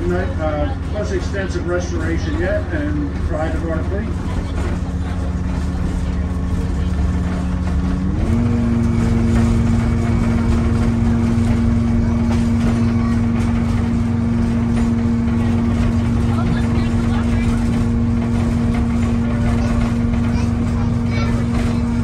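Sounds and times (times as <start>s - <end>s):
trolley car rumble and whine: 0.0s - 22.0s.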